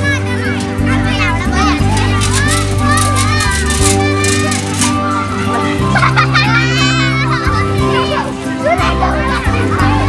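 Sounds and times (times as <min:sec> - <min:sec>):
background music: 0:00.0 - 0:10.0
children's voices at play: 0:00.0 - 0:10.0.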